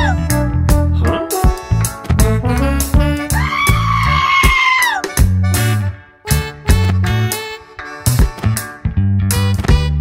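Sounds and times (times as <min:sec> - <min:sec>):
upbeat music with bass and drums: 0:00.0 - 0:10.0
high-pitched scream: 0:03.3 - 0:05.1.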